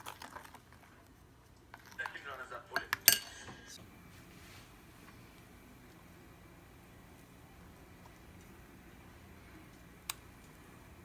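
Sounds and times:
batter mixing noise: 0:00.0 - 0:11.0
utensil clinking against a bowl: 0:01.8 - 0:03.6.

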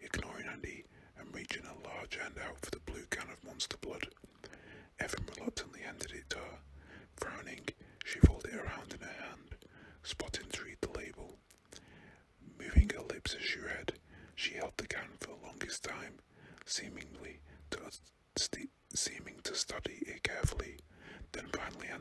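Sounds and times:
man whispering: 0:00.0 - 0:22.0.

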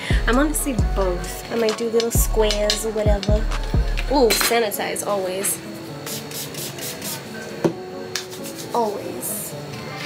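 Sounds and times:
spray bottle hissing: 0:05.9 - 0:07.4.

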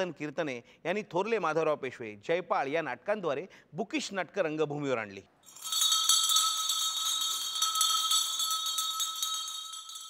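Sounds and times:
light jingling shimmer: 0:05.4 - 0:10.0.

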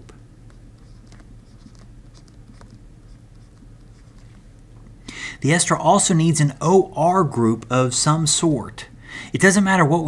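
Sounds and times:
stylus tapping and scratching: 0:00.0 - 0:05.0
steady low hum: 0:00.0 - 0:10.0.

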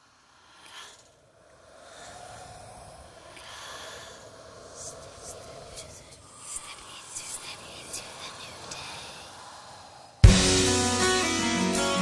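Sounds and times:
breathy inhales: 0:00.0 - 0:10.4
faint sustained drone: 0:00.0 - 0:12.0.

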